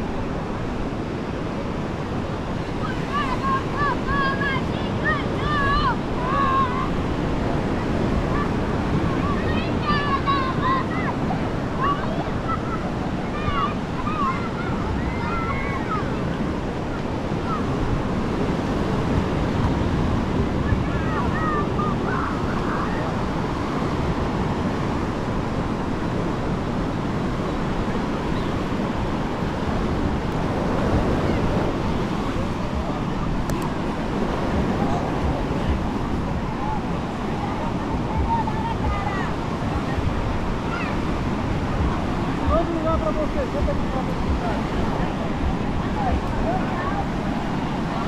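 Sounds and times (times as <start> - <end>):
surf washing onto beach: 0.0 - 48.0
wind buffeting microphone: 0.0 - 48.0
faint distant voices: 1.4 - 48.0.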